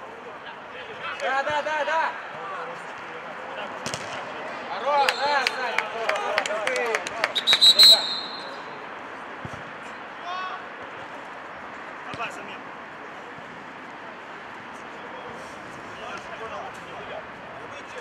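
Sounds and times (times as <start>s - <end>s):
footballers shouting: 4.7s - 8.8s
referee's pea whistle trilling: 5.0s - 5.5s, 7.4s - 8.7s.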